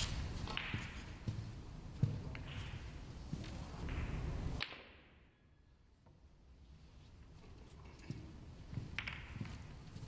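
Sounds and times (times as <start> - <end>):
low hall hum: 0.0 - 10.0.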